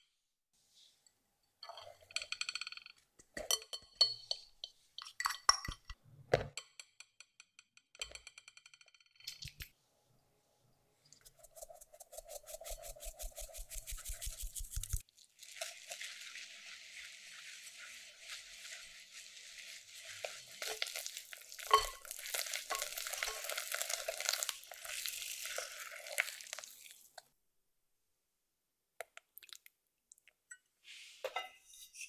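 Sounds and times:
whisk scraping in glass bowl: 0:11.2 - 0:24.3
whisk clinking against bowl: 0:17.0 - 0:24.4
metal sieve tapping: 0:21.7 - 0:22.1.

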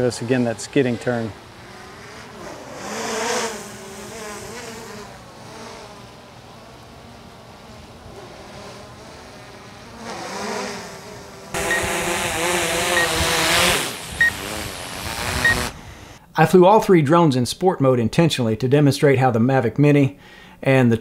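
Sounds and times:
drone propellers whining: 0:00.0 - 0:16.2
short high beep: 0:11.6 - 0:11.9.

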